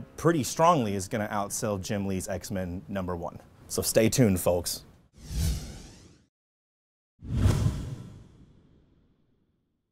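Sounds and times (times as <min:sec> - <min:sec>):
deep trailer whoosh: 0:05.2 - 0:06.2, 0:07.2 - 0:09.0.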